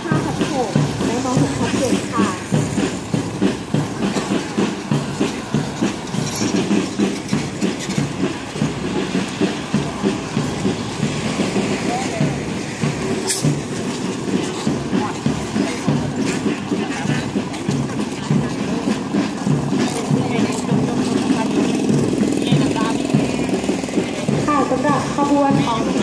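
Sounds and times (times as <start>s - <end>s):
parade drums beating: 0.0s - 26.0s
voices: 0.0s - 26.0s.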